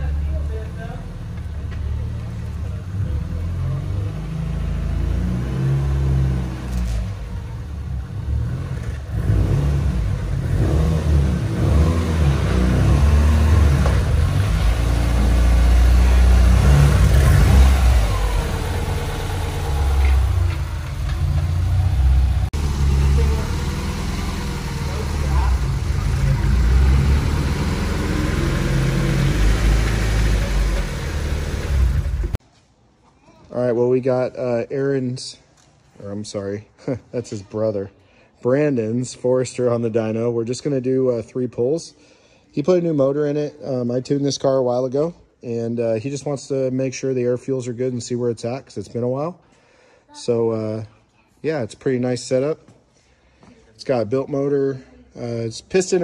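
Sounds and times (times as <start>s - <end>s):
turbocharged car engine running: 9.1s - 32.4s.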